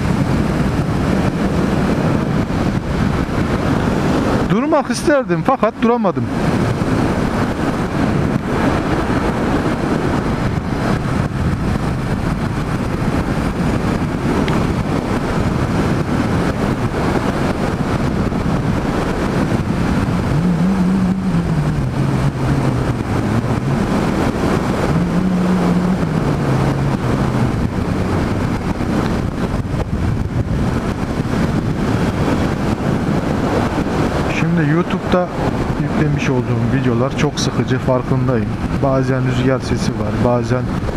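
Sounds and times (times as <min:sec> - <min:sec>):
wind on microphone: 0:00.0 - 0:40.9
motorcycle engine running: 0:06.3 - 0:34.4.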